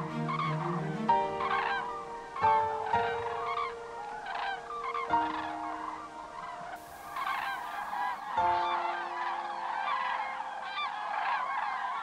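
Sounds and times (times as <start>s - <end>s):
cranes trumpeting calls: 0.0s - 12.0s.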